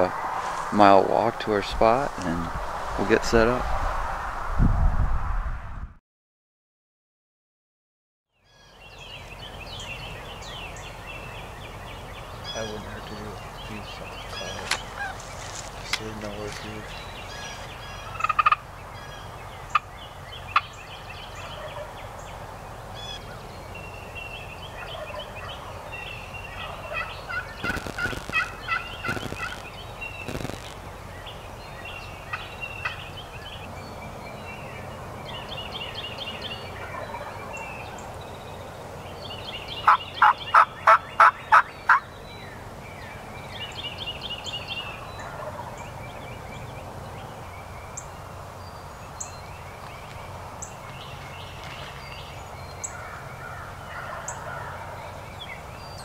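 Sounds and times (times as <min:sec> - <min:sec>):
other birds calling: 0:08.5 - 0:56.0
wild turkeys calling: 0:12.2 - 0:22.0, 0:24.6 - 0:31.0, 0:32.0 - 0:33.4, 0:36.7 - 0:38.1, 0:39.8 - 0:42.1, 0:44.5 - 0:45.9, 0:52.8 - 0:55.2.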